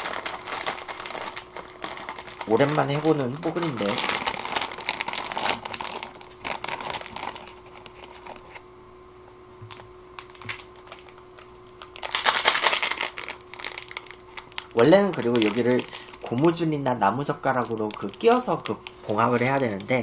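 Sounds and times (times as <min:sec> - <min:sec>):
plastic packaging crinkling: 0:00.0 - 0:08.6, 0:09.7 - 0:20.0.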